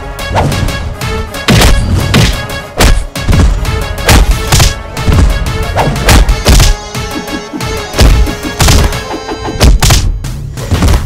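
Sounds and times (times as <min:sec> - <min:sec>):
background music: 0:00.0 - 0:11.0
punch and kick impacts: 0:01.4 - 0:06.8, 0:08.0 - 0:09.0, 0:09.6 - 0:11.0.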